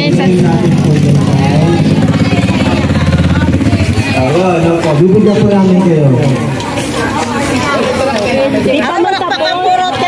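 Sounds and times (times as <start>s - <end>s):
man speaking over loudspeaker: 4.2s - 6.6s.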